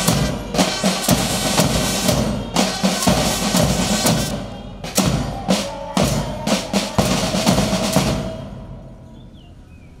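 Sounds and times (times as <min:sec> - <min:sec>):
snare and bass drums playing: 0:00.0 - 0:08.6.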